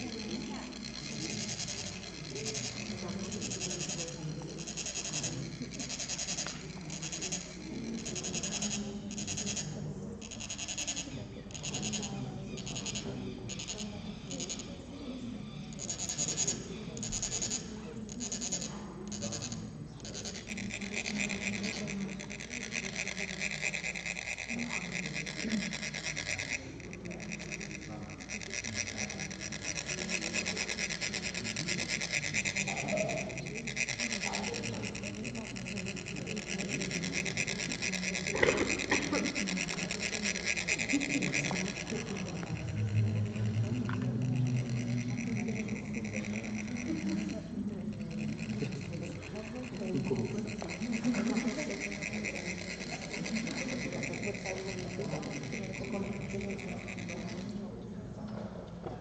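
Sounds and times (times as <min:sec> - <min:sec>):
metal rod rasping on ridged funnel: 0:00.0 - 0:09.4.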